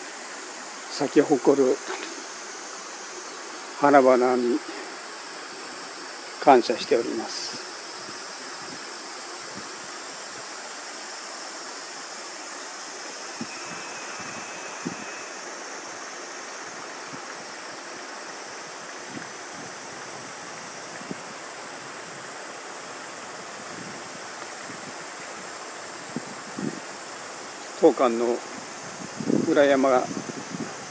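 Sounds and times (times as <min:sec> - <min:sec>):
mountain stream rushing: 0:00.0 - 0:30.9.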